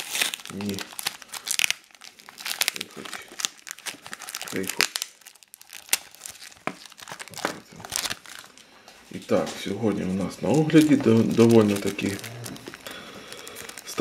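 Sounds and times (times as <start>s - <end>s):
paper envelope tearing: 0.0s - 8.5s, 10.8s - 12.9s
plastic bag crinkling: 0.0s - 14.0s.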